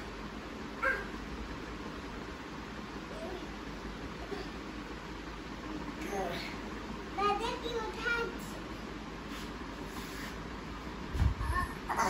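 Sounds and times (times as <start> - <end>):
child yelping: 0.8 - 1.2.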